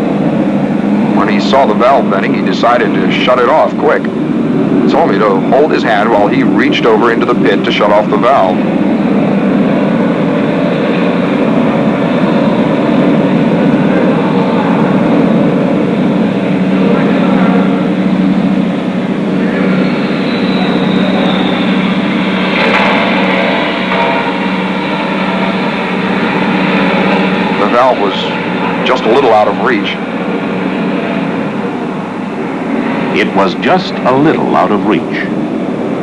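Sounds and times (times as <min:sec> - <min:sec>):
faint falling whine: 0:00.0 - 0:36.0
loud machinery drone: 0:00.0 - 0:36.0.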